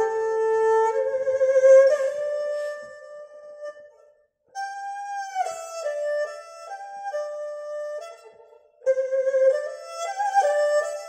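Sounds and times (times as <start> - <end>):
erhu playing mournful phrase: 0.0 - 0.2.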